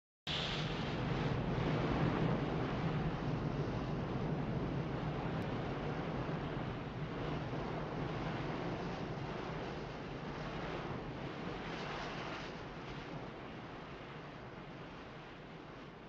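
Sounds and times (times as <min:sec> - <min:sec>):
wind buffeting microphone: 0:00.3 - 0:16.0.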